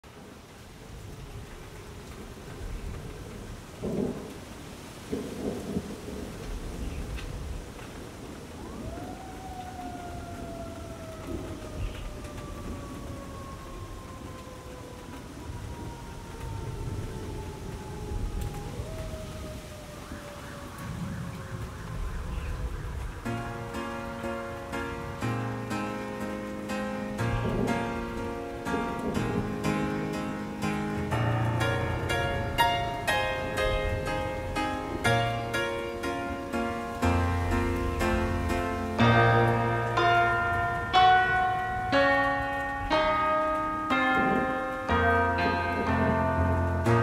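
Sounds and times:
steady rain: 0.0 - 47.0
rumbling thunder: 0.1 - 23.8, 27.2 - 47.0.

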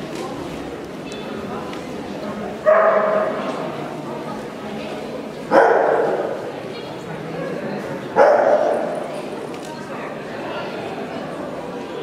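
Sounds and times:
dog barking in a large hall: 2.5 - 3.6, 5.4 - 6.7, 7.4 - 9.1.

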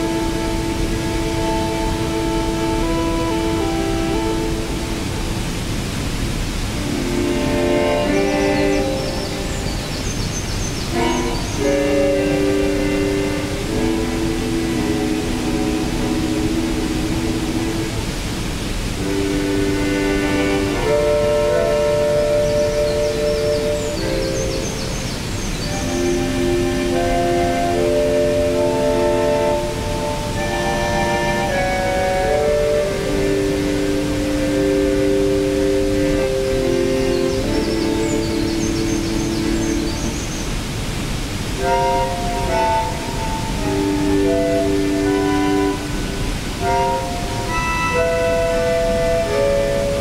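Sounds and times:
waterfall rushing: 0.0 - 50.0.

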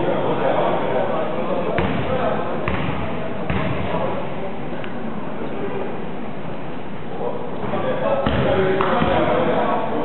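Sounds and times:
murmur of voices: 0.0 - 10.0
basketball bouncing on wooden floor: 1.8 - 2.0, 2.7 - 3.8.

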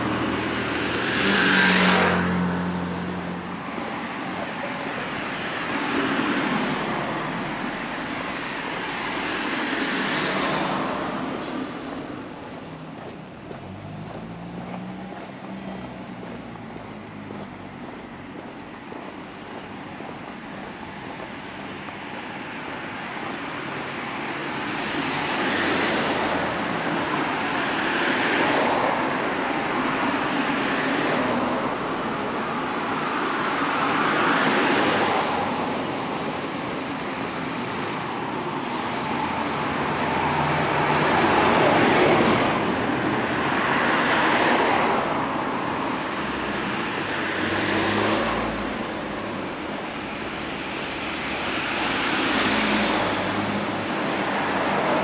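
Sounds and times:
bus passing close: 0.0 - 55.0
cars passing: 0.0 - 55.0.

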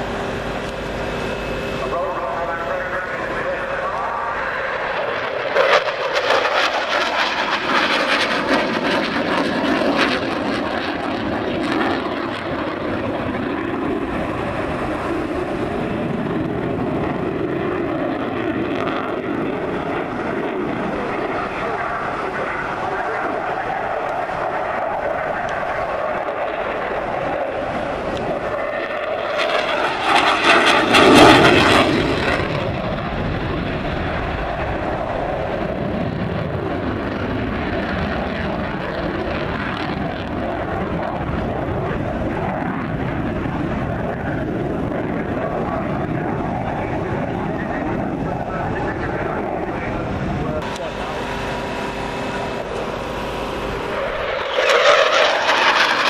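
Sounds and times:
fighter jet engine roar: 0.0 - 56.0.

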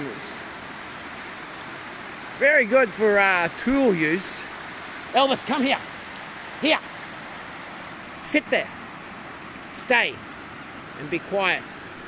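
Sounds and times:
creek water over rocks: 0.0 - 12.0
man calling out: 5.1 - 5.9, 6.6 - 6.9, 8.2 - 8.7, 9.7 - 10.2, 11.0 - 11.7.

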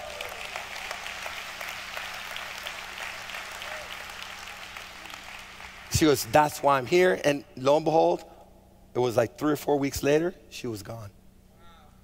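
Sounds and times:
congregation applauding: 0.0 - 6.5.

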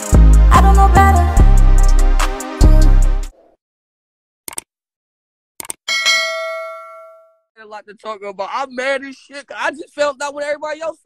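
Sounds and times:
quick clicks: 4.5 - 4.7, 5.6 - 5.8
bright bell chime: 5.9 - 7.4.

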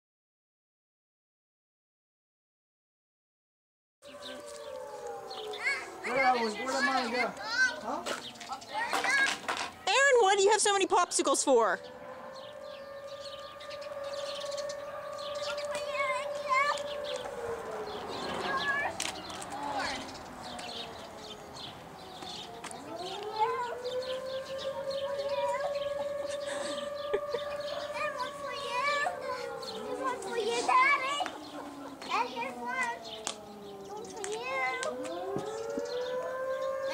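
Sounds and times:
outdoor siren: 4.0 - 36.9.

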